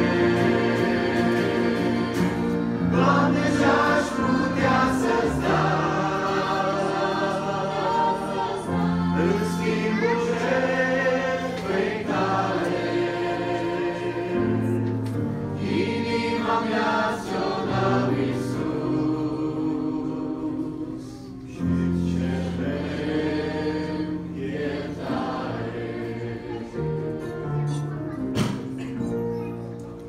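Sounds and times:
church choir singing a hymn: 0.0 - 27.7.

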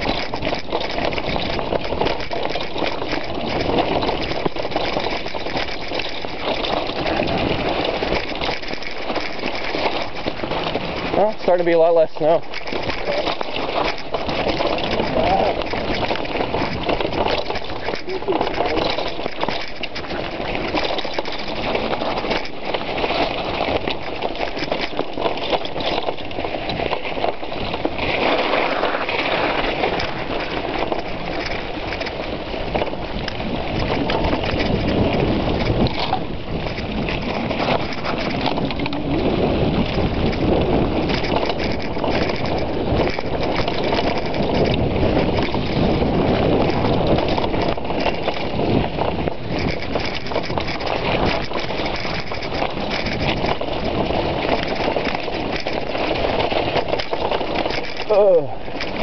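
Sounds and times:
bike frame rattling over bumps: 0.0 - 59.0
wind noise: 0.0 - 59.0.

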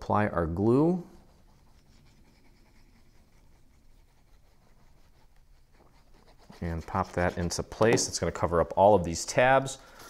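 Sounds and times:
glue nozzle scratching on card: 1.3 - 7.7.

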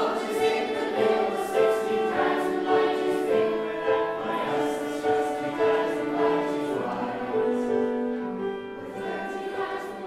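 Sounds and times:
children's choir singing: 0.0 - 10.0.

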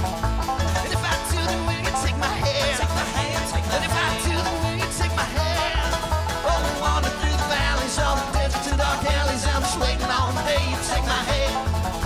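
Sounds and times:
acoustic guitars picking: 0.0 - 12.0
banjo picking: 0.0 - 12.0
upright bass walking line: 0.0 - 12.0.

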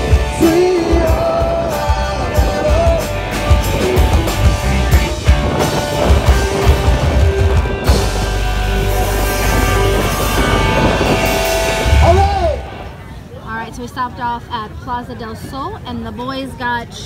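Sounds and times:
drum kit: 0.0 - 12.9
electric bass: 0.0 - 13.2
electric guitar: 0.0 - 13.2.

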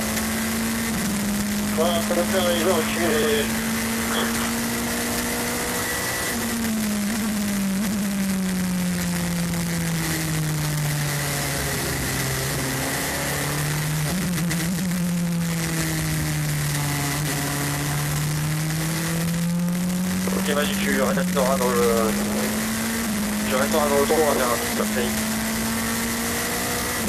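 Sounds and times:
race car engine at low revs: 0.0 - 27.0
faint high whine: 1.8 - 4.6.

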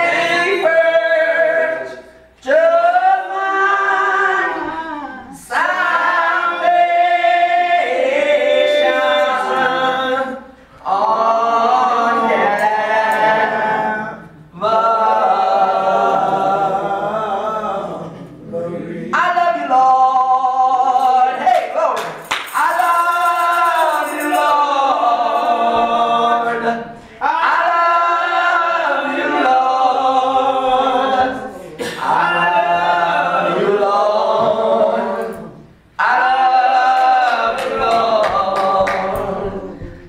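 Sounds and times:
worship singing: 0.0 - 40.0
person singing unaccompanied: 22.6 - 40.0.

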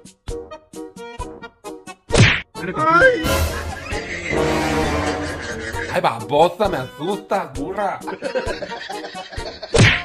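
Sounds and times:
comedic whack swoosh: 3.2 - 5.2.

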